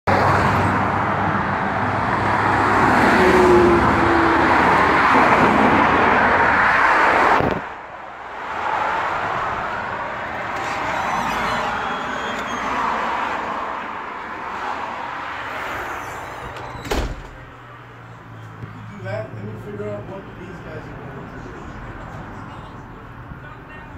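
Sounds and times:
loud street traffic: 0.0 - 23.9.

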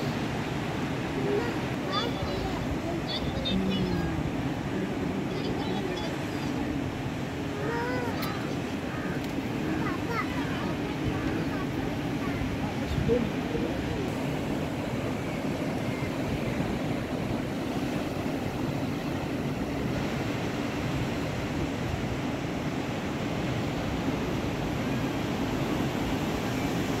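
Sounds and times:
breaking surf: 0.0 - 27.0
wind buffeting microphone: 0.0 - 27.0.

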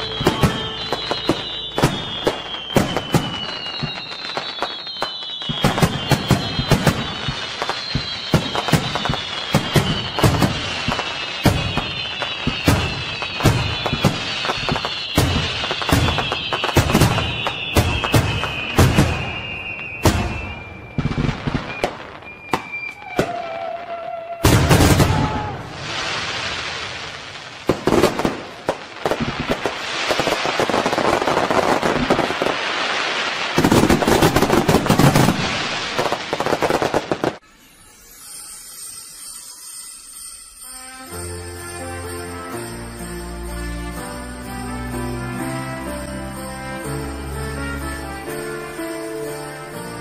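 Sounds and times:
fireworks bangs and crackles: 0.0 - 39.4, 40.1 - 50.0
fireworks whistles falling in pitch: 0.0 - 50.0
thin steady tone: 37.4 - 41.3.

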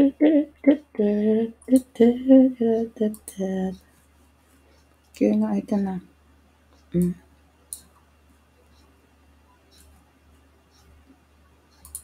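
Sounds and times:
low steady hum: 0.0 - 12.0
faint clicks: 9.7 - 12.0
sharp click: 11.7 - 12.0.

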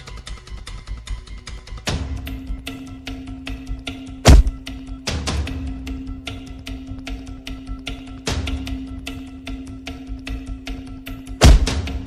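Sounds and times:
dramatic film score: 0.0 - 12.0
loud deep thud: 4.3 - 4.6, 11.4 - 11.9.

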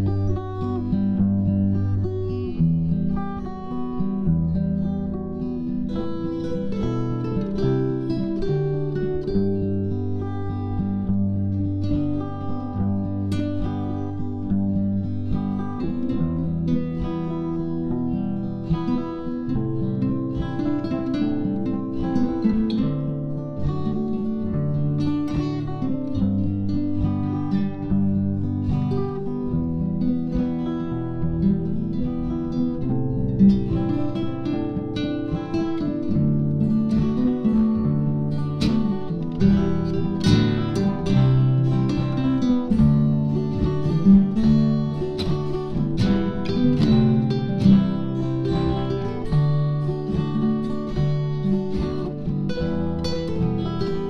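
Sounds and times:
acoustic guitar duet: 0.0 - 54.0.

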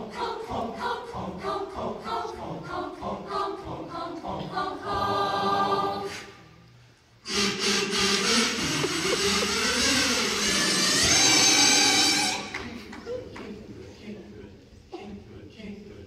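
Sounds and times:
choir singing: 0.0 - 6.4.

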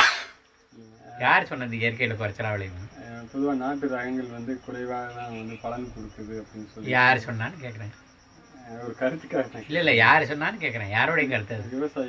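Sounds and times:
faint high-pitched pulsing: 0.0 - 12.0
man speaking: 0.8 - 12.0.

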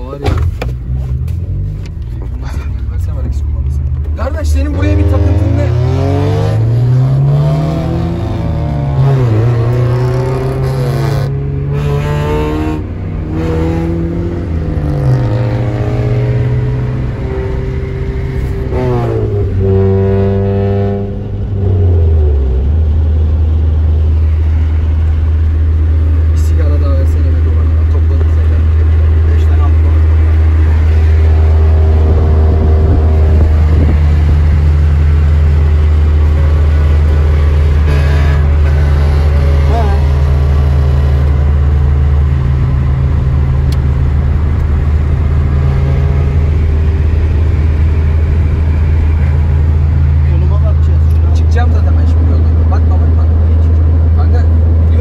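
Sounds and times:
car engine cruising drone: 0.0 - 55.0
engine revving: 4.1 - 55.0.

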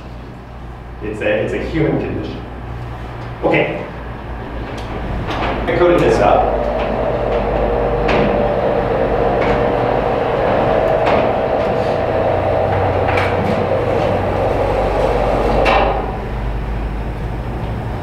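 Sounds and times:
projection screen motor hum: 4.2 - 18.0.

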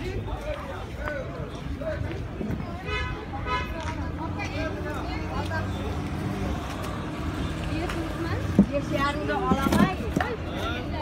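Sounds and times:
market voices: 0.0 - 11.0.

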